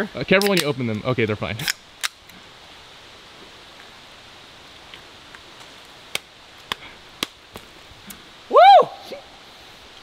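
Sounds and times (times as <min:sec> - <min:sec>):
faint woodland hiss: 0:00.0 - 0:10.0.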